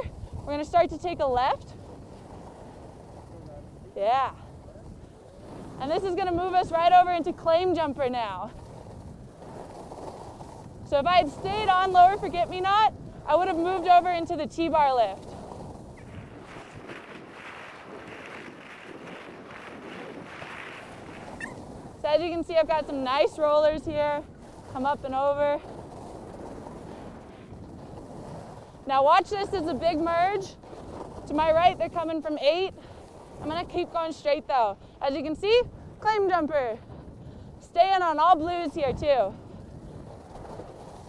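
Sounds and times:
skis sliding over packed snow: 0.0 - 41.0
wind on microphone: 0.0 - 41.0.

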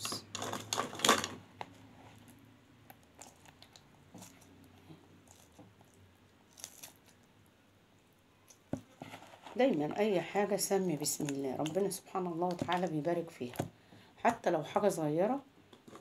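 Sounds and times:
wet squishes of rice stuffing: 1.8 - 7.3.

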